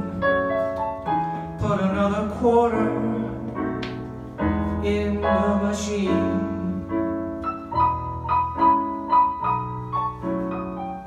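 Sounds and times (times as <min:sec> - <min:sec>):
slow piano chords: 0:00.0 - 0:11.0
person singing: 0:01.4 - 0:03.9, 0:04.6 - 0:07.1.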